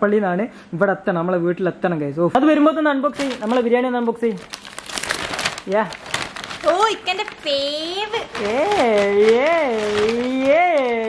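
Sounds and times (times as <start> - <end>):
person speaking: 1.0 - 4.6, 5.4 - 11.0
paper bag crinkling and rustling: 3.1 - 11.0.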